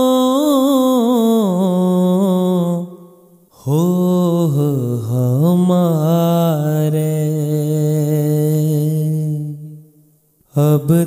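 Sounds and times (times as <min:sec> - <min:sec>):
person singing devotional song: 0:00.0 - 0:11.0.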